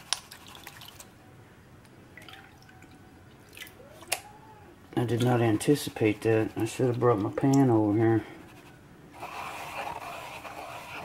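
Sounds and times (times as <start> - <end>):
water sloshing and dripping: 0.0 - 1.2, 1.8 - 4.3.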